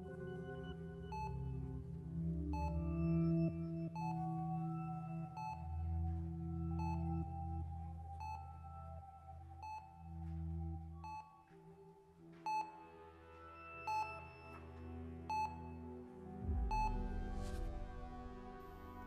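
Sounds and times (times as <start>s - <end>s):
slow ambient music: 0.0s - 19.0s.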